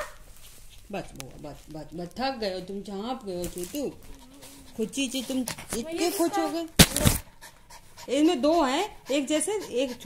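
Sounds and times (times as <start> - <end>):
woman talking: 0.9 - 7.2, 8.1 - 10.0
small dog panting: 3.8 - 6.6, 7.2 - 10.0.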